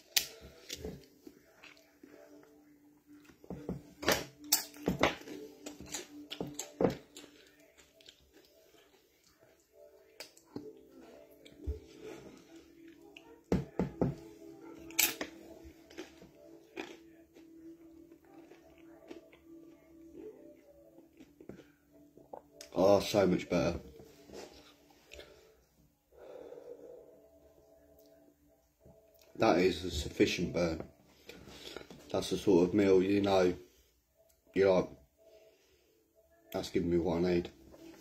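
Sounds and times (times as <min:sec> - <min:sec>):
chewing: 0:00.0 - 0:03.4, 0:04.4 - 0:22.7.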